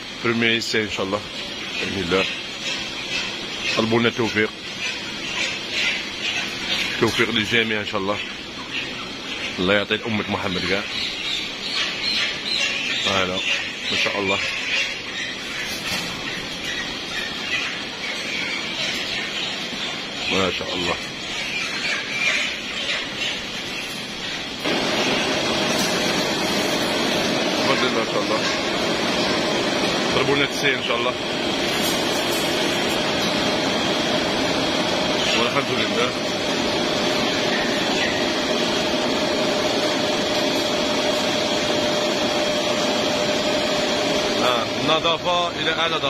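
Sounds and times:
conveyor line mechanical noise: 0.0s - 46.0s
faint hum: 0.0s - 46.0s.

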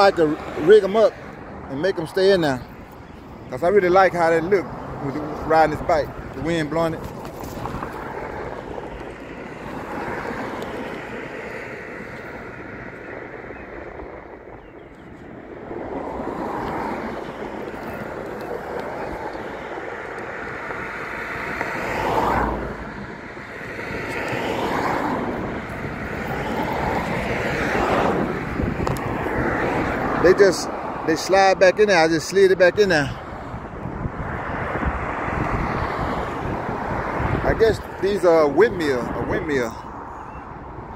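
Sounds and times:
wind buffeting microphone: 0.0s - 40.9s
passing road traffic hiss: 15.2s - 40.9s.

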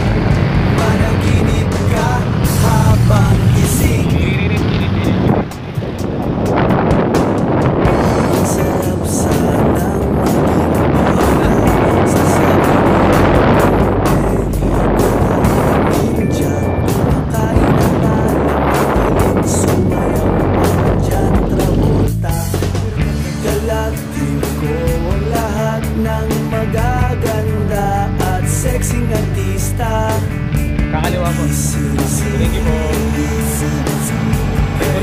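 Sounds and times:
pop music: 0.0s - 35.0s
road and wind noise: 0.0s - 35.0s.

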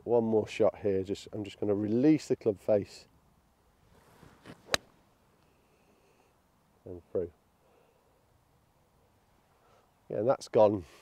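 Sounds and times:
golf club striking ball: 4.4s - 5.0s.

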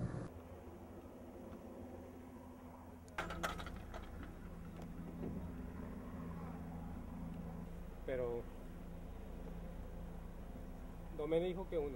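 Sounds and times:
car engine idling: 3.4s - 11.9s.

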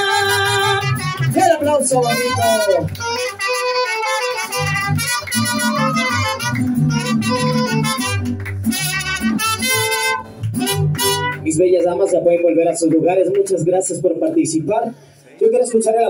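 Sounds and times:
trumpet melody: 0.0s - 12.0s
strummed guitars: 0.0s - 12.4s
bass line: 0.0s - 12.8s.

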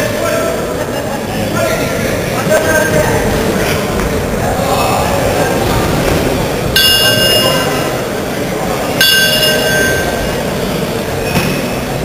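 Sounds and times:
sports hall murmur: 0.0s - 12.0s
metal bell ringing: 6.8s - 7.9s, 9.0s - 10.4s.

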